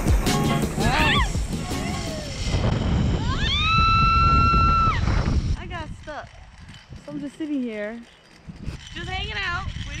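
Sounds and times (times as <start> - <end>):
low rumbling noise: 0.7 - 7.0
woman exclaiming: 0.8 - 2.3.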